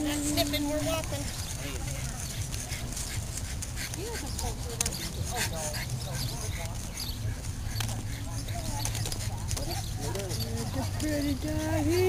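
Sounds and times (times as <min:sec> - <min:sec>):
distant chatter: 0:00.0 - 0:12.0
footsteps on asphalt: 0:00.0 - 0:12.0.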